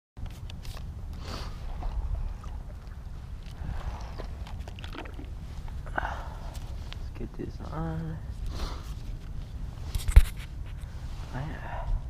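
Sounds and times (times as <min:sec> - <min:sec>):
wind buffeting microphone: 0:00.9 - 0:07.6.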